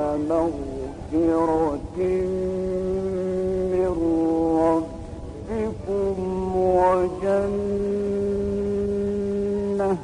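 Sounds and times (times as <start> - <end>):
man chanting quran recitation: 0.0 - 10.0.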